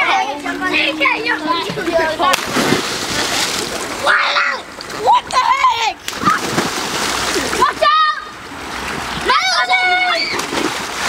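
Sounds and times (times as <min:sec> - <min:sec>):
water splashing in a pool: 0:00.0 - 0:11.0
child shouting: 0:04.0 - 0:06.4, 0:07.6 - 0:08.3, 0:09.2 - 0:10.5
child shrieking: 0:09.4 - 0:10.5.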